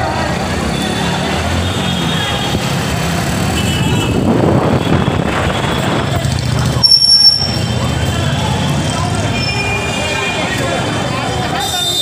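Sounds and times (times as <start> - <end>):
road traffic rumble: 0.0 - 12.0.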